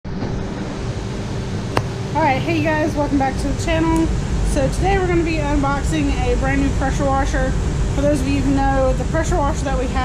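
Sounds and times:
steady low hum: 0:00.4 - 0:10.0.

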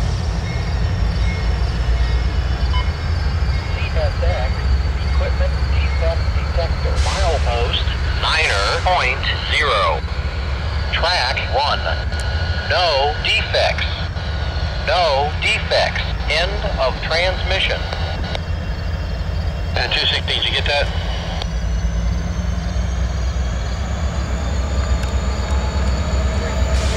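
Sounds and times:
diesel locomotives rumbling: 0:00.0 - 0:26.9
automated voice over radio: 0:03.7 - 0:10.1, 0:10.8 - 0:18.4, 0:19.7 - 0:21.4.

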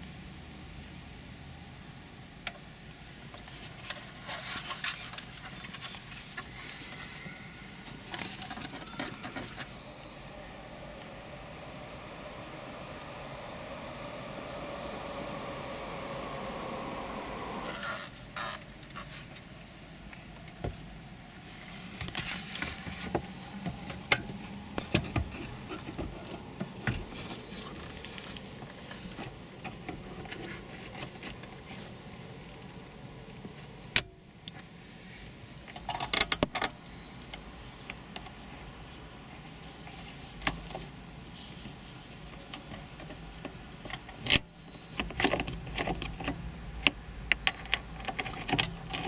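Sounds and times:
vehicle passing outside: 0:09.2 - 0:33.9.

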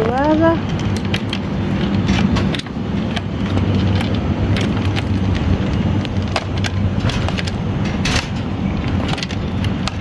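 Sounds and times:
shopping cart wheels rumbling: 0:00.0 - 0:10.0
wheels clicking over tile joints: 0:00.0 - 0:10.0.

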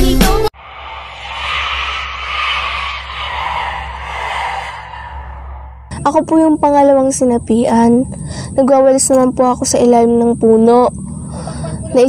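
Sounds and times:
rushing wind-like noise: 0:00.6 - 0:06.2
steady low hum: 0:00.6 - 0:12.0.

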